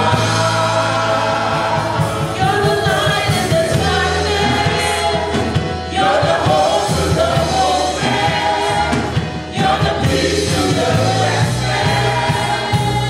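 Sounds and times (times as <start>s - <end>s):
band accompaniment: 0.0s - 13.0s
voices singing along: 0.0s - 13.0s
woman singing into microphone: 2.4s - 5.2s.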